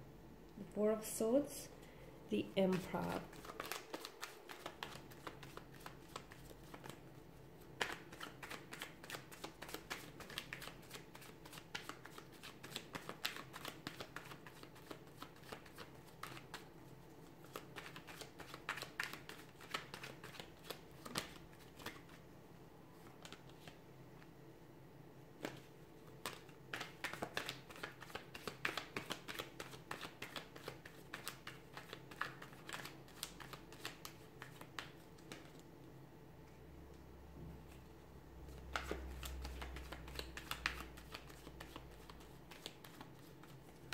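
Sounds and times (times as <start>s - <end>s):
faint steady hum: 0.0s - 43.9s
cards being shuffled: 2.7s - 7.0s, 7.8s - 16.6s, 17.4s - 22.2s, 25.4s - 35.6s, 38.5s - 43.9s.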